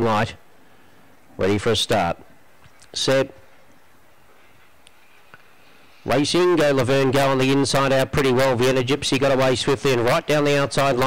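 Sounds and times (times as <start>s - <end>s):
low steady hiss: 0.0s - 11.0s.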